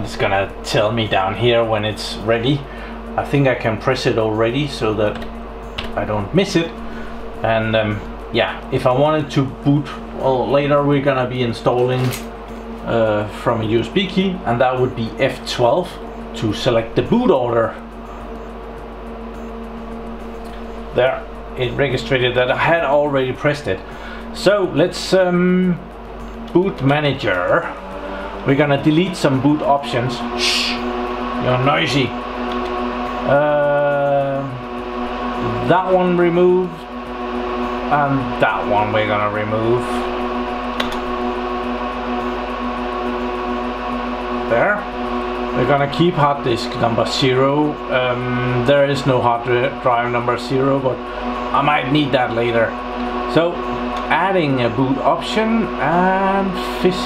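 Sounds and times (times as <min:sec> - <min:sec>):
server cooling fans whirring: 0:00.0 - 0:57.0.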